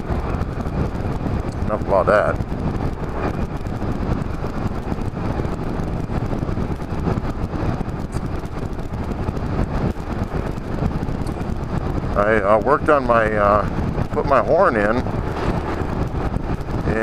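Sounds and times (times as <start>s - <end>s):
wind noise: 0.0s - 17.0s.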